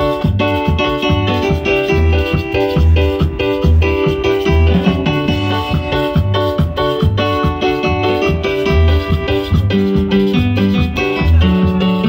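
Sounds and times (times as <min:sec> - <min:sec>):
steady drum beat: 0:00.0 - 0:10.6
electric bass line: 0:00.0 - 0:12.0
electronic keyboard chords: 0:00.0 - 0:12.0.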